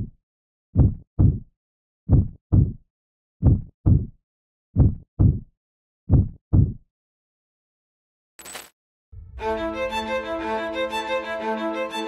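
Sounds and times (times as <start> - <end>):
heartbeat thumps: 0.8 - 1.4, 2.1 - 2.8, 3.4 - 4.1, 4.8 - 5.5, 6.1 - 6.8.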